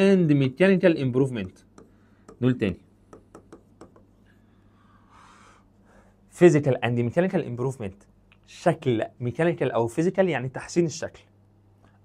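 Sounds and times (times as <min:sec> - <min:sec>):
low electrical hum: 0:00.0 - 0:12.0
soft intake of breath: 0:04.2 - 0:06.3.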